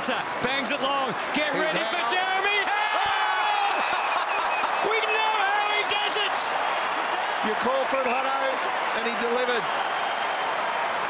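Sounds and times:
man commentating: 0:00.0 - 0:03.6, 0:04.7 - 0:06.6
stadium crowd noise: 0:00.0 - 0:11.0.

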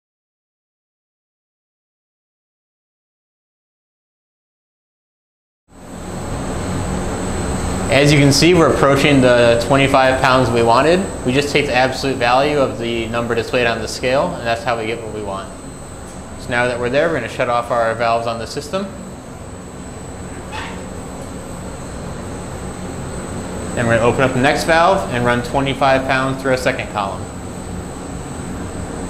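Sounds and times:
high-pitched whine: 0:05.7 - 0:29.0
machinery noise: 0:05.8 - 0:29.0.

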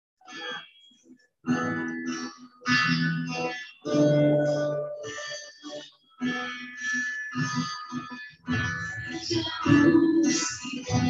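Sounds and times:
guitar music: 0:00.2 - 0:11.0.

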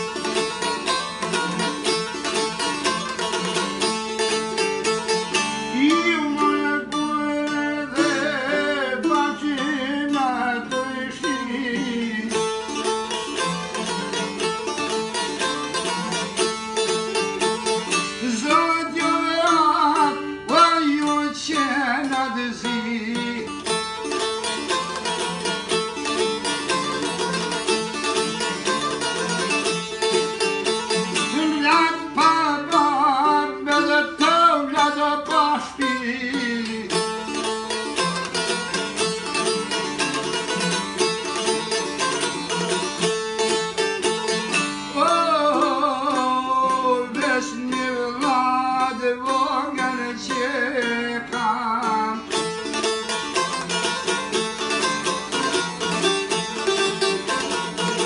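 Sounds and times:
plucked folk lute: 0:00.0 - 0:58.0
man singing: 0:05.4 - 0:13.0, 0:17.5 - 0:23.9, 0:30.9 - 0:37.4, 0:44.4 - 0:53.4.

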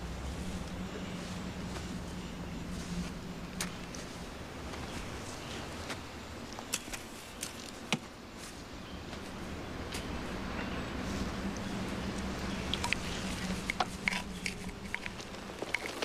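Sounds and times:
footsteps through undergrowth: 0:00.0 - 0:16.0
low steady hum: 0:00.0 - 0:16.0
twigs cracking: 0:00.2 - 0:16.0.

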